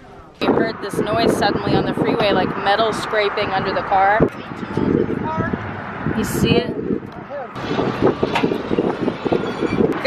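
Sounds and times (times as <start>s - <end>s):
freeway traffic passing: 0.0s - 10.0s
wind on microphone: 0.0s - 10.0s.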